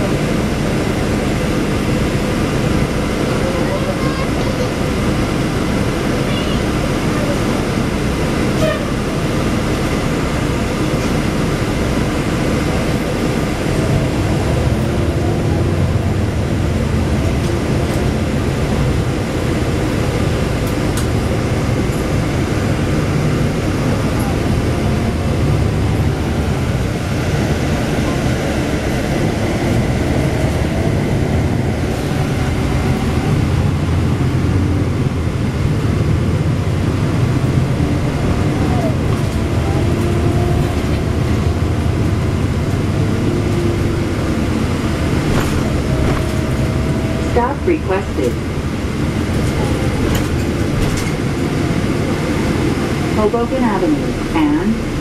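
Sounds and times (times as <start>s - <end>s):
bus engine drone: 0.0s - 55.0s
road and rattle noise: 0.0s - 55.0s.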